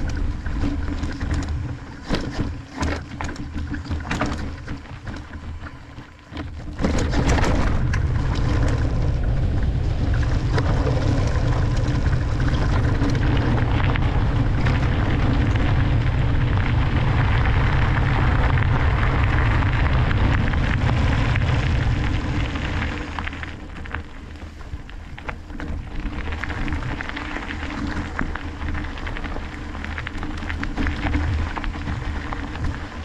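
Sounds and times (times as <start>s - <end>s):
bike tyres rolling over gravel: 0.0s - 33.0s
wind rushing over microphone: 6.5s - 33.0s.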